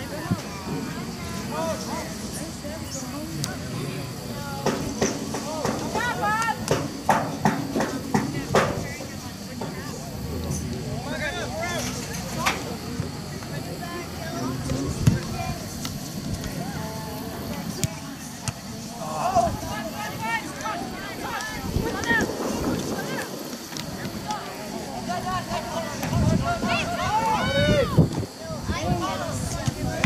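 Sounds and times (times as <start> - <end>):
distant shouts and calls: 0.0 - 30.0
outdoor background noise: 0.0 - 30.0.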